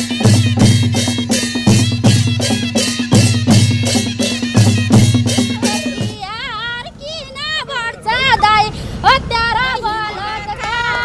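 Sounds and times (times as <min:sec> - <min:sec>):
women singing a folk song: 0:05.6 - 0:11.0.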